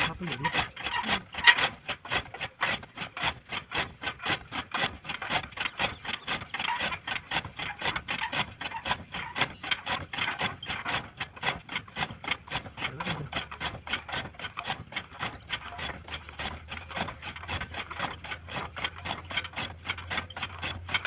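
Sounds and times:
chaff cutter chopping fodder: 0.0 - 21.0.

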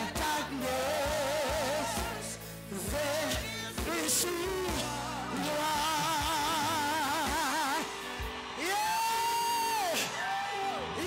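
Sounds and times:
live worship music: 0.0 - 11.0.

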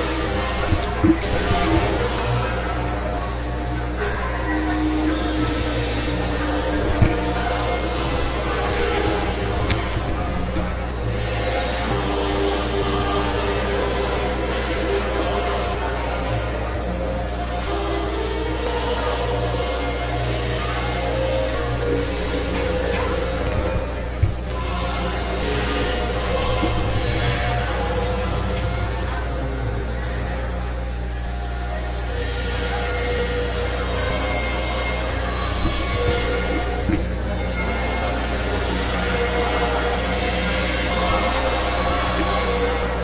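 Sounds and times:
anthem over loudspeakers: 0.0 - 43.0
indistinct crowd voices: 0.0 - 43.0
steady low hum: 0.0 - 43.0.

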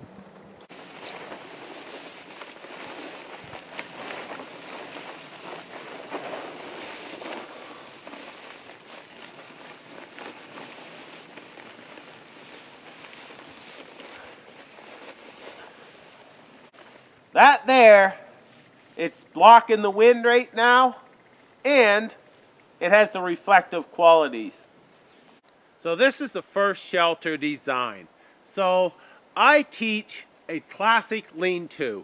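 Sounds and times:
tarp crinkling and rustling: 0.7 - 17.2.

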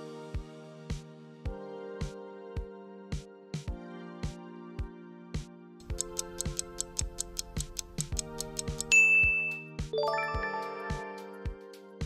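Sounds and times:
background music: 0.0 - 12.0
fast timer ticking: 5.8 - 9.6.

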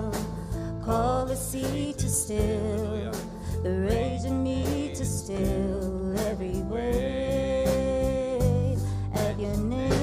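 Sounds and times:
worship band playing: 0.0 - 10.0.

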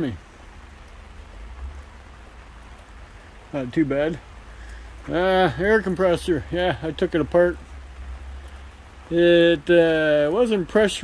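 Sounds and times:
light rain falling: 0.0 - 11.0.

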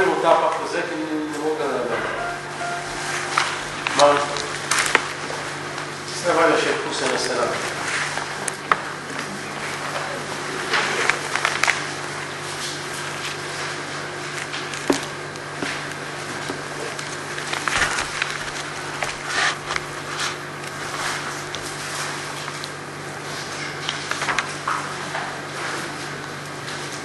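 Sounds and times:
electrical hum: 0.0 - 27.0
paper pages rustling: 10.6 - 15.0, 16.6 - 22.8.

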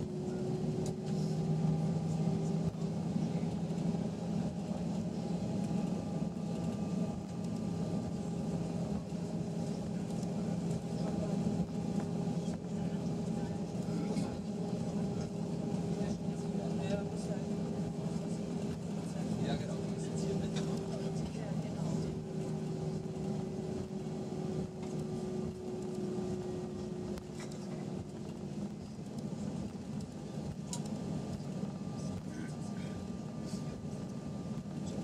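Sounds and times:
aircraft cabin engine hum: 0.0 - 35.0.

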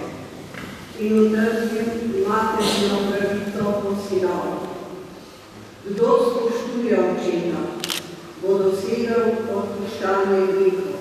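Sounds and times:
woman reading aloud: 1.0 - 5.0, 5.8 - 7.8, 8.4 - 11.0.

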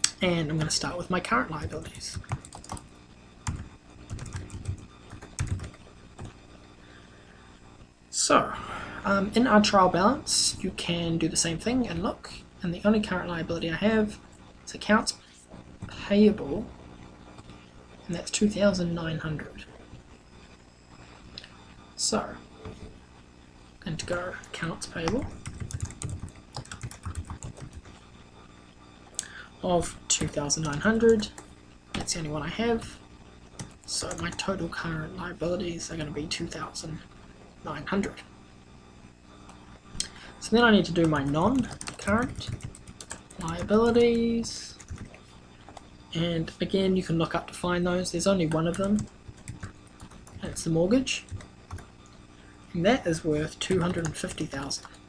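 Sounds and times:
typing on computer keyboard: 3.4 - 6.3, 25.2 - 28.0, 41.6 - 44.0, 44.8 - 45.2, 48.6 - 50.4.

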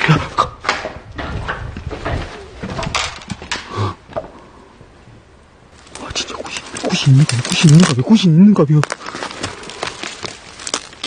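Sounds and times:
dry grass rustling and crackling: 5.7 - 11.0.

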